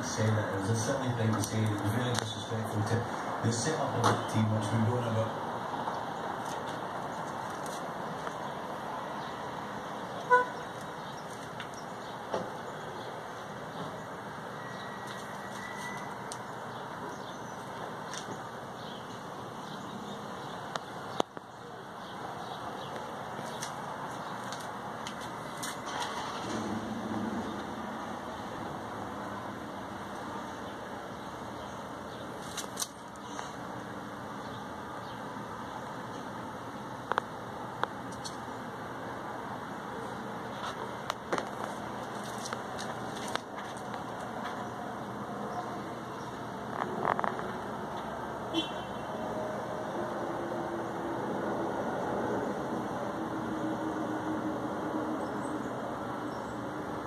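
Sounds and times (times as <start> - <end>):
street traffic noise: 0.0 - 57.0
car horn toot: 10.3 - 10.7, 48.5 - 49.1.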